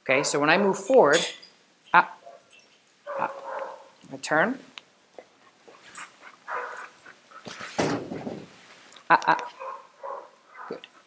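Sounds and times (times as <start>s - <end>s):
dog whining: 3.1s - 3.9s, 5.3s - 7.6s.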